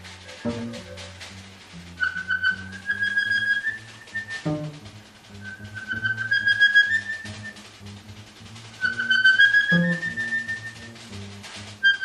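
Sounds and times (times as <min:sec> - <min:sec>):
double bass plucking low notes: 0:00.0 - 0:03.3, 0:04.4 - 0:05.9, 0:07.2 - 0:08.8, 0:10.8 - 0:11.8.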